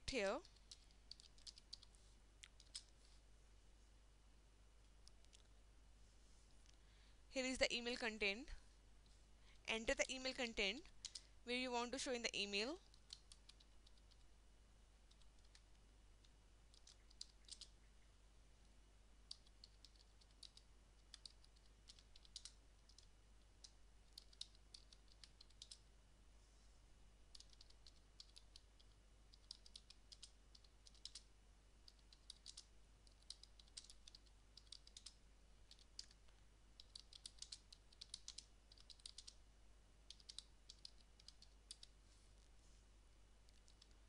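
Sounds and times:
computer keyboard typing: 0.1s - 2.9s, 10.1s - 11.2s, 12.8s - 14.2s, 15.1s - 15.8s, 16.7s - 17.8s, 19.2s - 25.9s, 27.3s - 36.2s, 36.8s - 39.4s, 40.0s - 42.0s, 43.5s - 44.0s.

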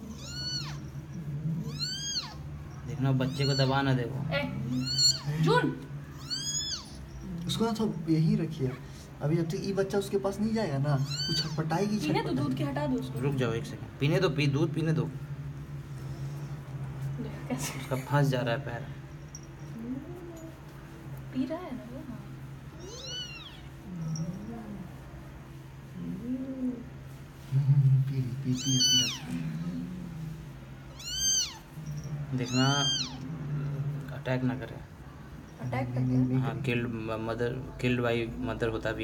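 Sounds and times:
kitten mewing: 0.0s - 0.9s, 1.5s - 2.5s, 3.2s - 7.2s, 11.0s - 11.9s, 22.8s - 24.2s, 28.4s - 30.1s, 30.9s - 33.6s.

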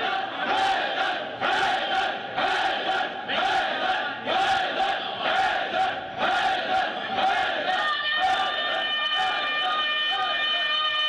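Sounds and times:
men shouting rhythmic chant: 0.0s - 10.7s.

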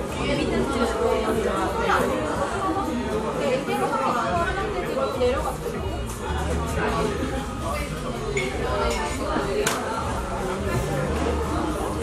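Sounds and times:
indistinct voices chattering: 0.0s - 12.0s.

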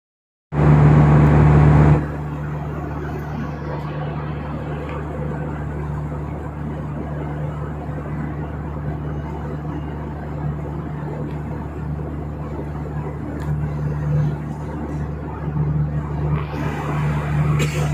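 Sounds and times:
airliner cabin drone: 0.5s - 17.9s.

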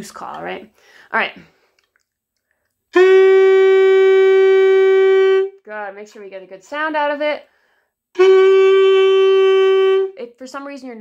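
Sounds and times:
saxophone mouthpiece long note: 2.9s - 5.5s, 8.2s - 10.2s.

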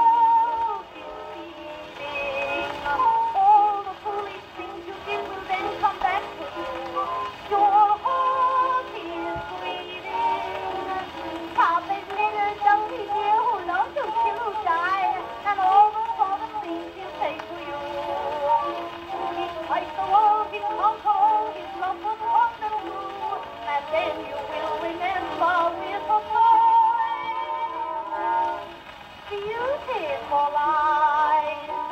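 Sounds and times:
record surface hiss: 0.0s - 31.9s
woman singing on gramophone: 0.0s - 31.9s.

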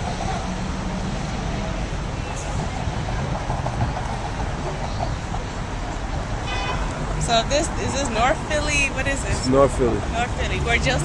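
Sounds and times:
rumble of passing vehicles: 0.0s - 11.0s.

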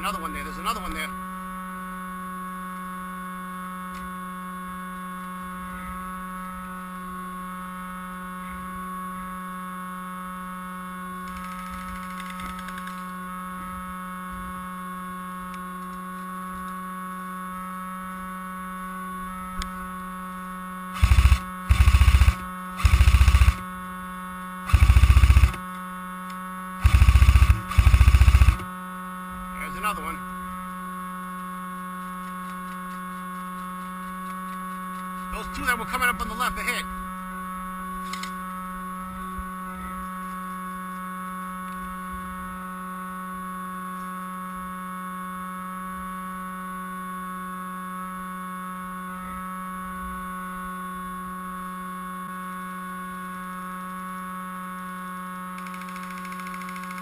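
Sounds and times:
steady electrical hum: 0.0s - 49.0s
airsoft rifle bursts: 21.0s - 23.7s, 24.7s - 25.6s, 26.8s - 28.7s, 55.6s - 57.0s.

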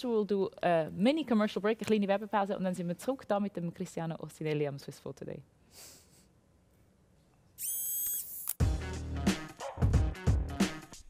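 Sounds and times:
high whistling tone: 7.6s - 8.4s
music with heavy bass beat: 8.6s - 11.0s.

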